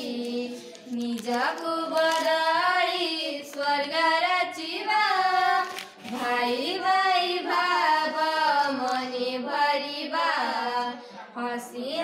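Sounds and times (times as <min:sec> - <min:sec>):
girls singing together: 0:00.0 - 0:12.0.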